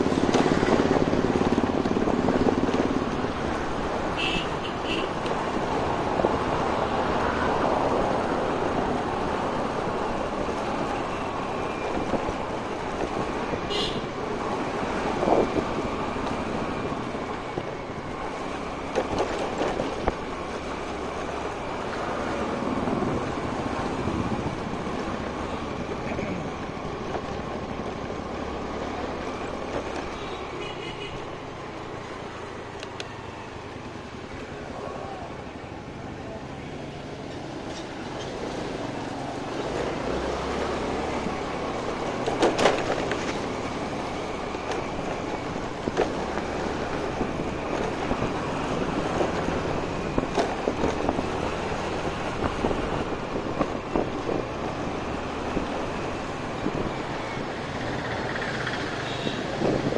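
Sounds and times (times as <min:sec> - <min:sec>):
road and wind noise: 0:00.0 - 0:59.9.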